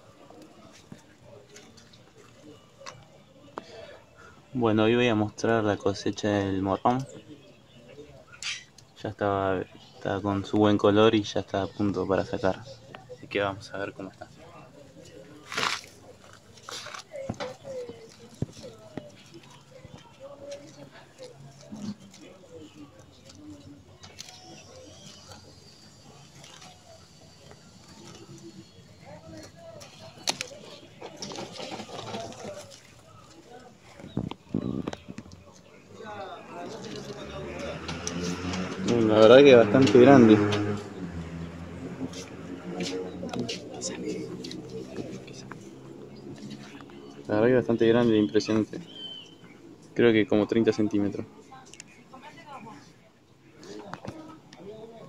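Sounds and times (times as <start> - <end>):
faint distant voices: 0.0 - 55.0
low cooing bird calls: 48.0 - 49.9.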